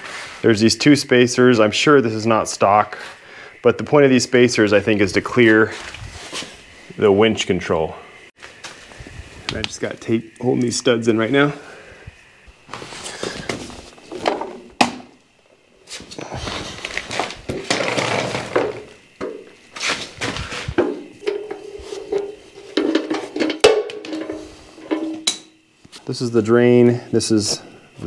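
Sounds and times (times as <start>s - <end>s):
metal tank scraping on floor: 16.6s - 19.0s, 19.8s - 25.3s
sharp metal knocks and clinks: 22.8s - 25.6s.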